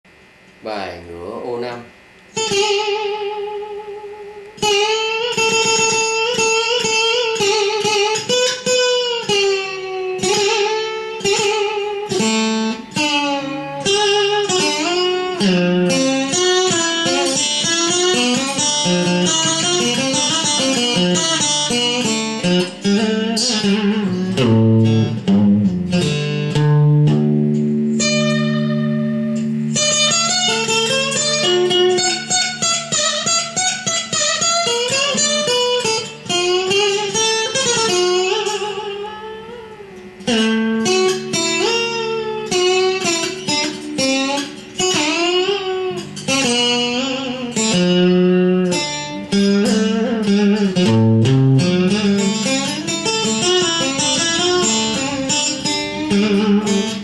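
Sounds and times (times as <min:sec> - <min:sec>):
fingerstyle guitar melody: 0:01.7 - 0:57.0.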